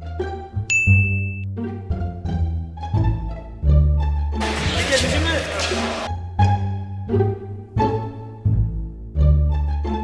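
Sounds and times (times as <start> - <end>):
background music with bass line: 0.0 - 10.0
bright ding: 0.7 - 1.5.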